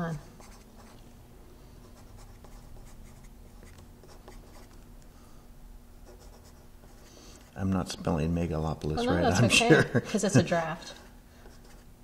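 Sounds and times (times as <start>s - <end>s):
faint steady hum: 0.0s - 12.0s
pencil scratching on paper: 0.1s - 0.9s, 1.9s - 4.8s, 6.1s - 7.2s, 11.4s - 11.9s.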